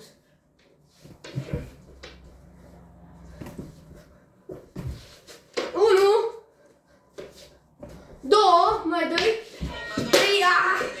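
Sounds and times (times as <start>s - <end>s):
soft knocks and bumps: 3.2s - 5.8s.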